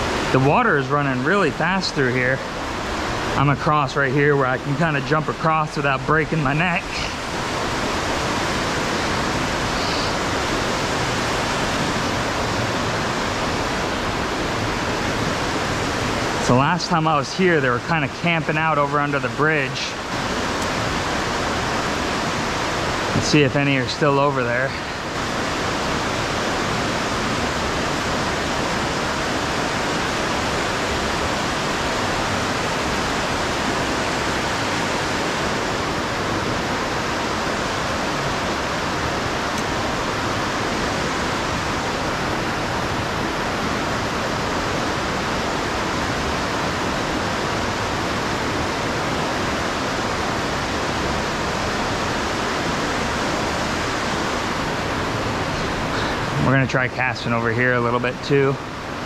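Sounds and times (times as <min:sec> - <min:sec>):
river water rushing over rocks: 0:00.0 - 0:59.0.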